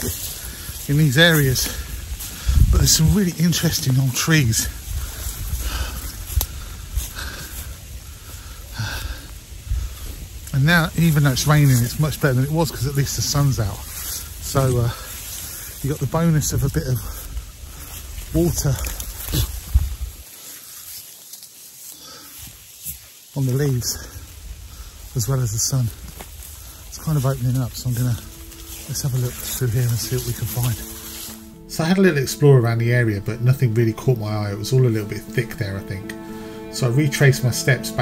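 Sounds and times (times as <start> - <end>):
wind rumble on microphone: 0.0 - 20.2
light rain hiss: 0.0 - 38.0
twigs scraping rain jacket: 0.0 - 38.0
man breathing and sniffing: 1.7 - 2.7, 4.7 - 10.4, 21.8 - 23.0
wordless vocal sound: 26.9 - 38.0.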